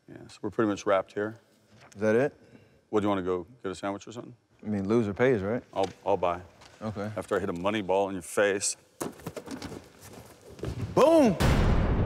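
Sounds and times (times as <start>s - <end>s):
footsteps on hardwood court: 9.0s - 11.0s.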